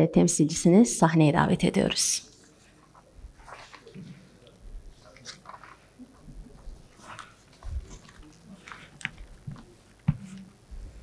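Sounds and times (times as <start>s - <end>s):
clicks and rustles of handling: 2.3s - 10.6s.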